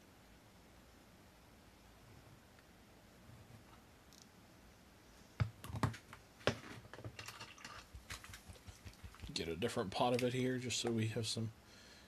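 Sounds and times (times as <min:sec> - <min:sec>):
plastic paint pots clicking: 0:06.9 - 0:09.4.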